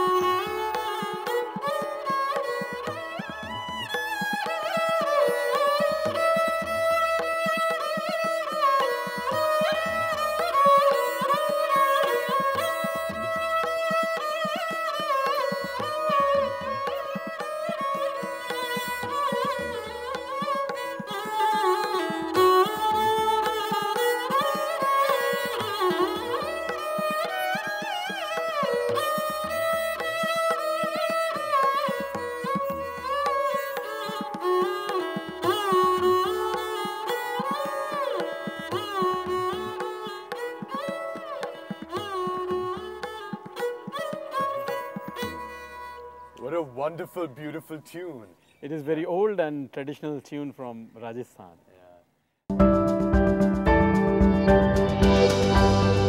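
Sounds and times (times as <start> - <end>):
bowed sarangi folk melody: 0.0 - 48.7, 52.5 - 56.0.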